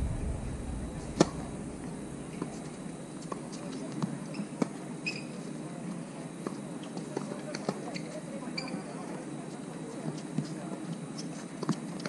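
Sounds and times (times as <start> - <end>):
low wind rumble on microphone: 0.0 - 3.6.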